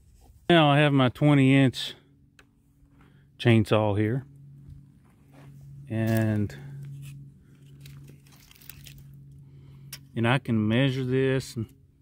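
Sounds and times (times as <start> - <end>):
low steady hum: 0.0 - 12.0
tape measure clicking and rustling: 7.0 - 9.1.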